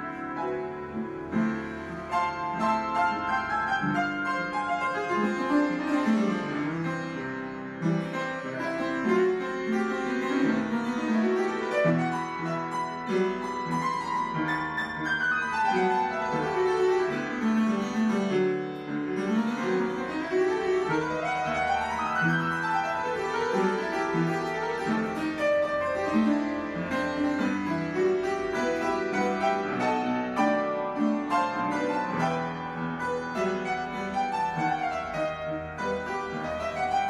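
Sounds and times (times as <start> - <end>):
solo upright piano: 0.0 - 37.0.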